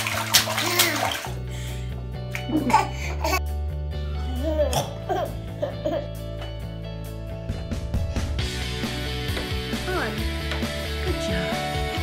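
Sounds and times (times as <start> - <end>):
toddler slapping bathwater: 0.0 - 1.5
background music: 0.0 - 12.0.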